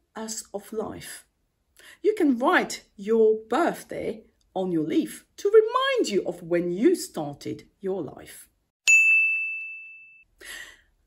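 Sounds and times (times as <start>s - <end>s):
bright ding: 8.9s - 10.3s.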